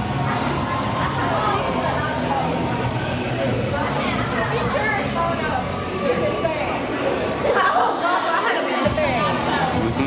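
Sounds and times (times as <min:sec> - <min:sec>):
chatter of people talking: 0:00.0 - 0:10.0.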